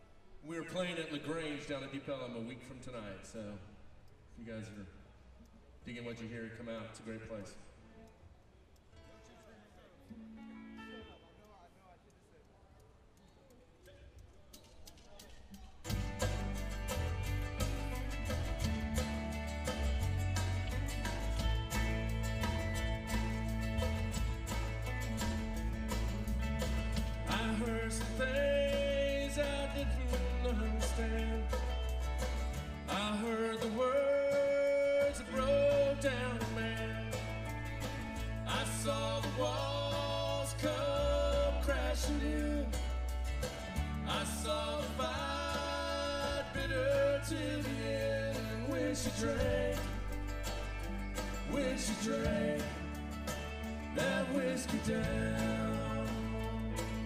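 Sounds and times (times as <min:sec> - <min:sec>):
live country band playing: 0:15.8 - 0:57.0
steady drum beat: 0:15.9 - 0:34.0, 0:35.1 - 0:57.0
deep bass: 0:15.9 - 0:34.1, 0:35.0 - 0:57.0.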